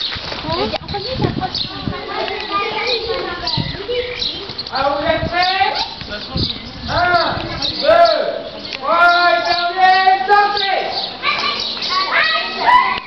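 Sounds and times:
girls chatting: 0:00.3 - 0:13.0.

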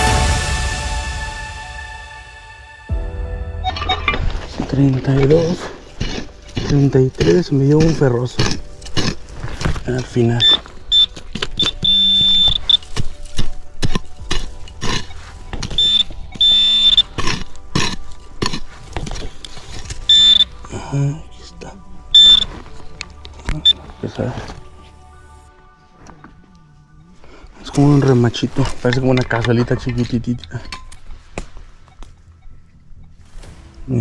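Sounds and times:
metal detector wavering tones: 0:03.6 - 0:04.3, 0:10.4 - 0:13.0, 0:15.1 - 0:17.2, 0:20.0 - 0:20.5, 0:22.1 - 0:22.5
pinpointer high-pitched beeps: 0:10.4 - 0:12.8, 0:15.7 - 0:17.1, 0:20.1 - 0:20.5, 0:22.1 - 0:22.5.

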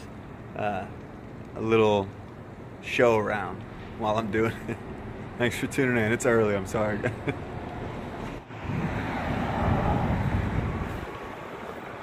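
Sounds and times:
vehicle passing: 0:07.4 - 0:12.0.

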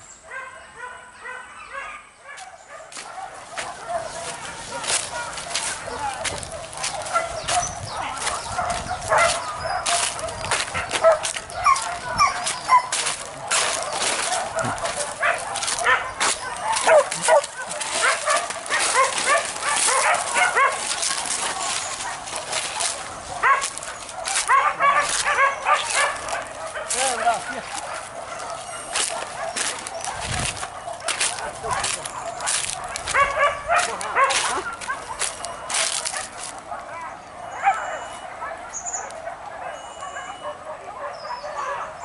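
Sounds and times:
dogs yelping and barking: 0:00.0 - 0:42.0.

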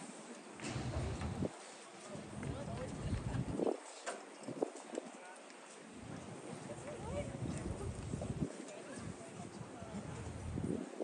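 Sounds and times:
low rumble on microphone: 0:00.6 - 0:03.8, 0:07.0 - 0:08.5, 0:09.5 - 0:10.9.

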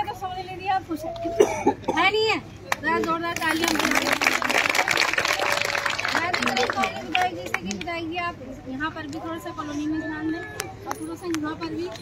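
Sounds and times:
people's voices: 0:00.0 - 0:12.0.

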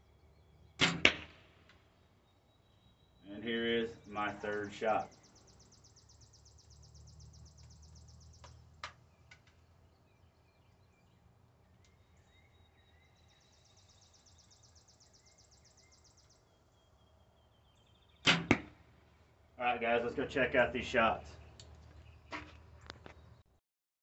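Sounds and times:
faint bird chirps: 0:01.8 - 0:18.3.

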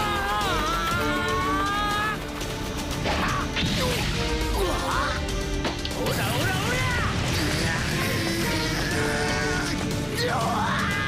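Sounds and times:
strained vocal cries: 0:00.0 - 0:02.3, 0:06.1 - 0:11.0
background music: 0:00.0 - 0:11.0.

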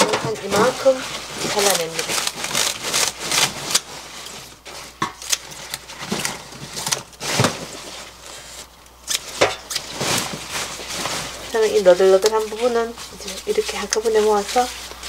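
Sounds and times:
rustle of cut leaves: 0:00.4 - 0:04.9, 0:09.2 - 0:15.0
scissors snipping onion tops: 0:05.2 - 0:07.1, 0:13.2 - 0:14.5.

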